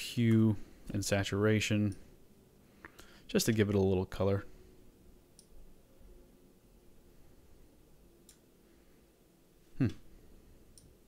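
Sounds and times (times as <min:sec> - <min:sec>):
person humming: 0:09.8 - 0:10.0.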